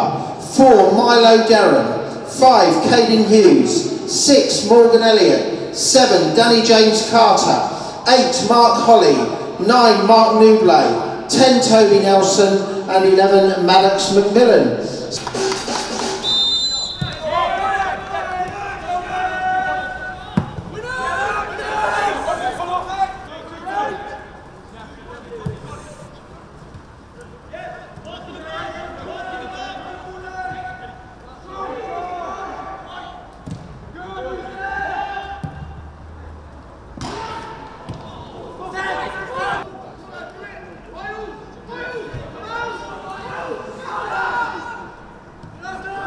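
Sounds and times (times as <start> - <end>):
players calling out: 2.3 - 46.0
footballers shouting: 15.1 - 36.3, 37.0 - 46.0
football kick thump: 17.0 - 17.2, 20.4 - 20.8, 33.4 - 33.8.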